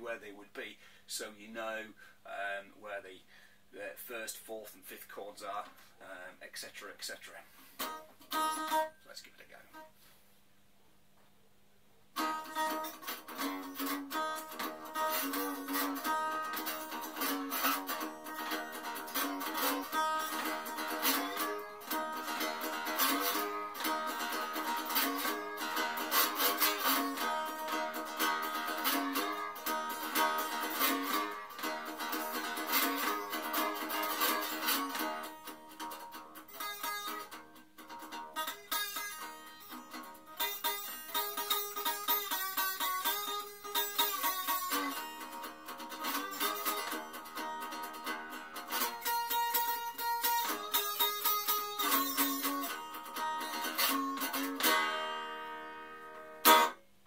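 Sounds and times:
acoustic slide guitar: 12.2 - 56.8.

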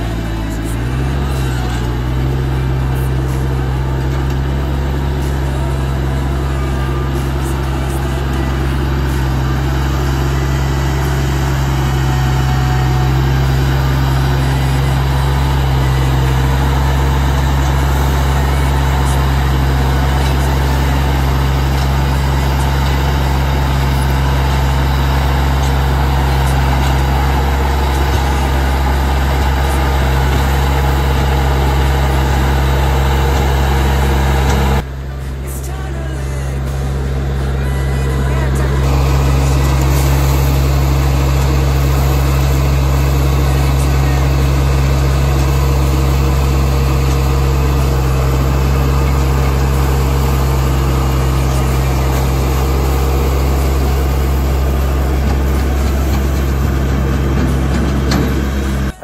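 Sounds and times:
diesel engine running: 0.0 - 59.0.

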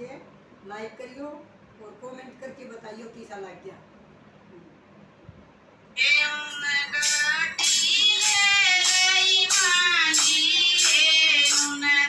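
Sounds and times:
woman singing devotional song: 6.0 - 12.0.

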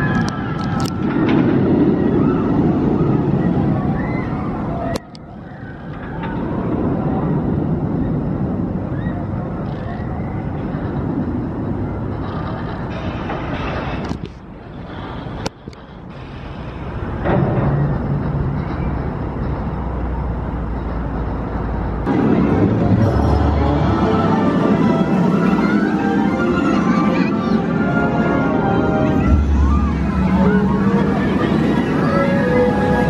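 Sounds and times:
roller coaster rumbling on track: 0.0 - 33.0.

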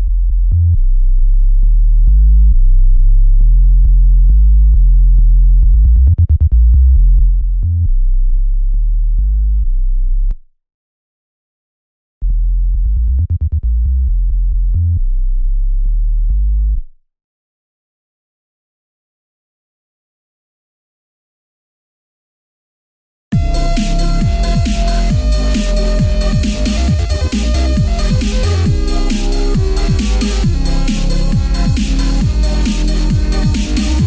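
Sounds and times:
deep synth sub-bass notes: 0.0 - 10.4, 12.2 - 16.9, 23.4 - 34.0.

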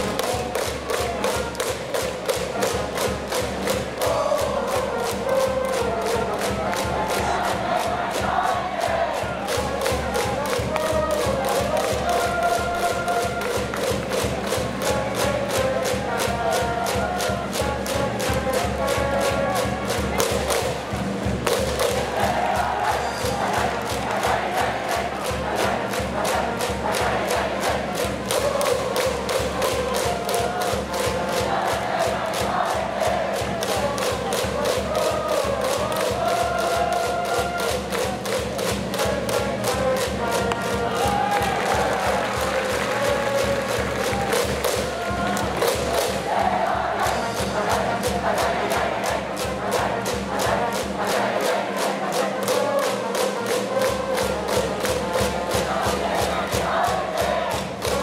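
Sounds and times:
crowd chanting and singing: 0.0 - 58.0
regular drumbeat: 0.0 - 58.0.

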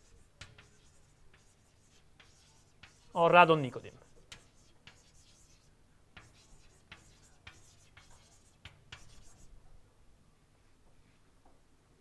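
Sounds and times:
chalk writing on blackboard: 0.0 - 9.6.

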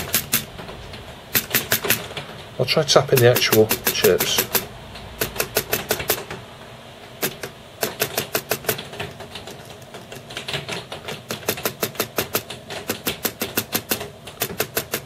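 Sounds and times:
rapid tapping clicks on chips: 0.0 - 6.5, 7.1 - 15.0.

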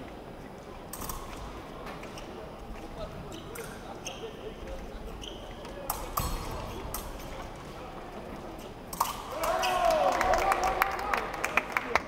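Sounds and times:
high squeaks: 3.3 - 7.4.

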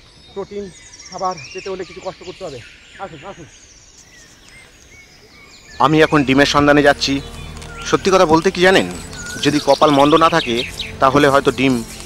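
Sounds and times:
bird chirps: 0.0 - 12.0
forest ambience: 0.0 - 12.0
man's voice: 5.8 - 12.0.

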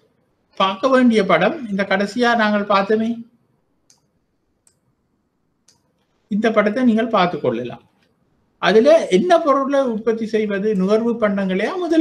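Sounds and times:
faint sharp clicks: 3.8 - 4.9
man's voice: 8.6 - 12.0.

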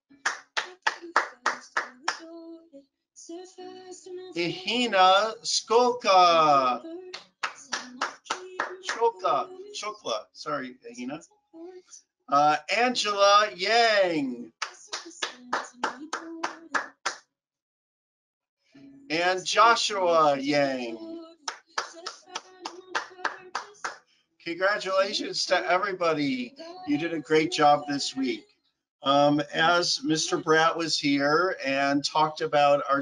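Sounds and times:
hands clapping: 0.2 - 2.3, 7.1 - 9.4, 12.9 - 17.2, 21.4 - 24.0.

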